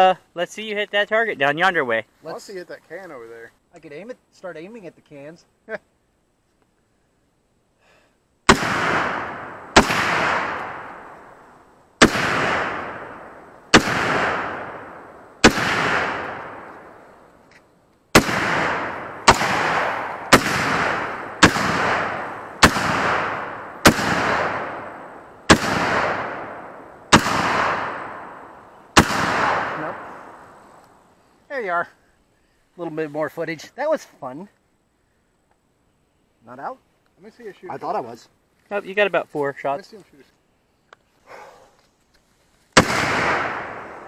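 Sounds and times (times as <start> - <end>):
gunshots echoing: 8.5 - 11.4, 12.0 - 17.1, 18.1 - 30.6, 42.8 - 44.0.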